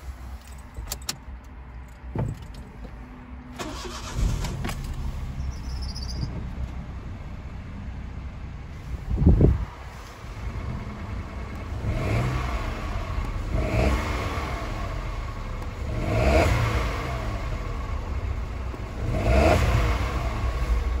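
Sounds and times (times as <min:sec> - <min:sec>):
car engine idling and revving: 0:00.0 - 0:21.0.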